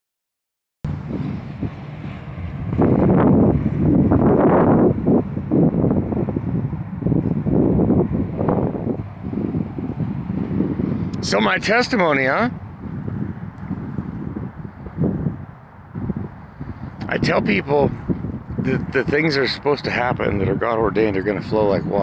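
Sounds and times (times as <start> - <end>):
wind buffeting microphone: 0.9 - 22.0.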